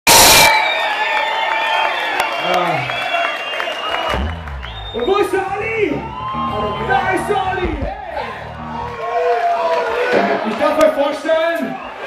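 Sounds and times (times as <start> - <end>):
audience cheering and whistling: 0.1 - 12.0.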